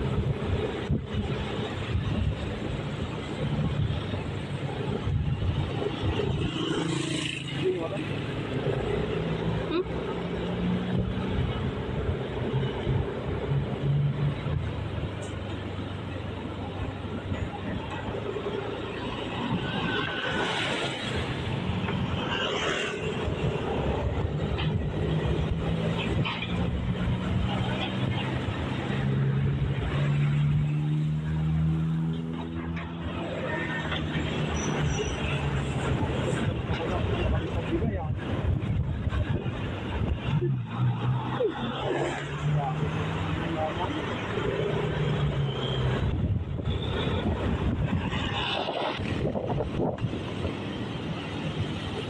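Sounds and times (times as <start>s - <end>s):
vehicle engine and road noise: 0.0s - 52.0s.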